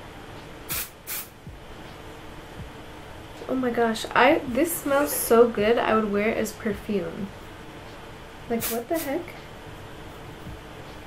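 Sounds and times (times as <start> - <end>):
aerosol spray bursts: 0.7 - 1.4, 8.6 - 9.2.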